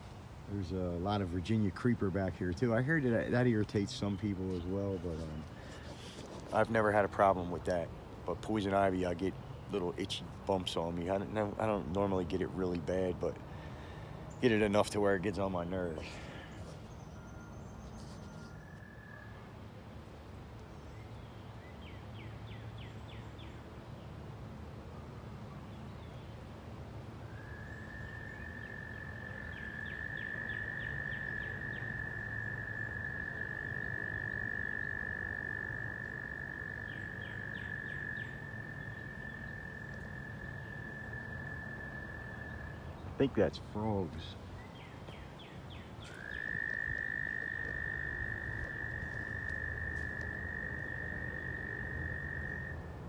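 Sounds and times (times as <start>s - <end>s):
frog long high trill: 27.4s - 42.8s, 46.1s - 52.9s
frog rattling calls: 27.4s - 42.9s, 46.0s - 52.8s.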